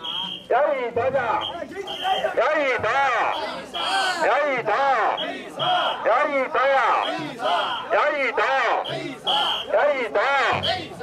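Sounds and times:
group chanting shouts: 3.1s - 11.0s.

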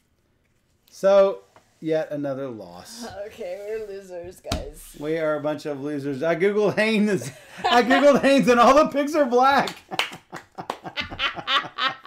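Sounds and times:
people laughing hard: 7.2s - 8.4s, 10.3s - 12.0s.

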